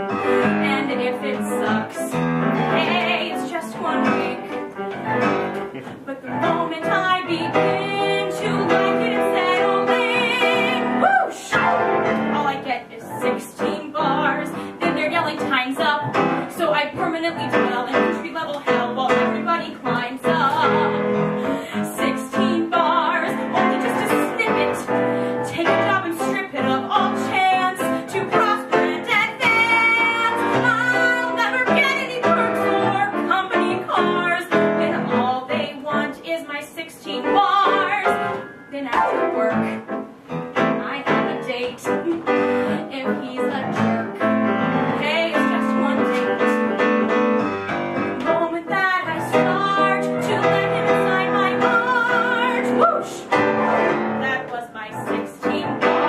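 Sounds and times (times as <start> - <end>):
woman singing: 0.0 - 4.8, 6.0 - 40.0, 40.6 - 47.1, 48.2 - 56.0
piano accompaniment: 0.0 - 56.0.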